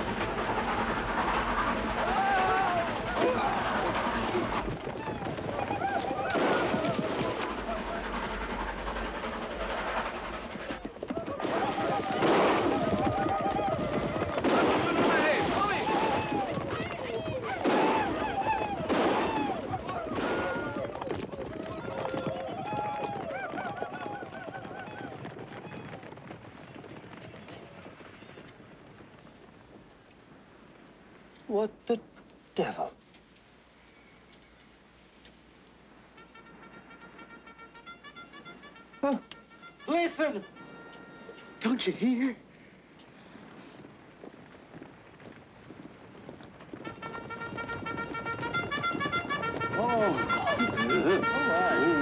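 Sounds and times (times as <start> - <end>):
horses galloping: 0.0 - 31.6, 33.2 - 52.0
background noise: 0.0 - 52.0
riders yipping war cries: 1.6 - 8.4, 10.8 - 26.3, 47.6 - 52.0
bugle call: 10.6 - 25.3, 36.1 - 42.0, 46.8 - 52.0.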